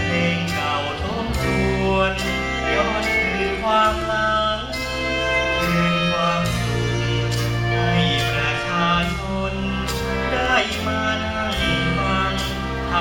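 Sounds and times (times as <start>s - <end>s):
percussion hits: 0.0s - 12.7s
held bass notes: 0.0s - 13.0s
live band music: 0.0s - 13.0s
man singing into a microphone: 0.0s - 13.0s.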